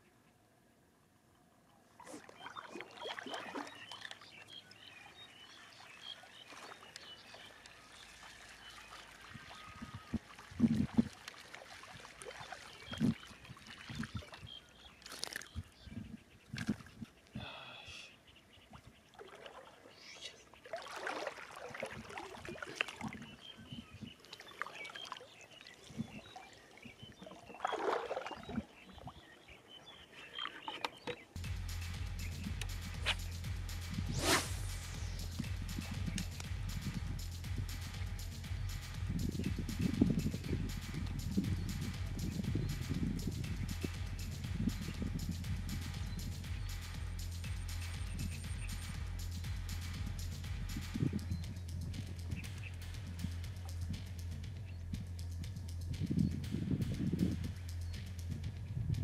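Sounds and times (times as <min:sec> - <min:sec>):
water sloshing and splashing: 0:01.9 - 0:15.8, 0:18.7 - 0:29.5
background music with steady beat: 0:31.4 - 0:59.0.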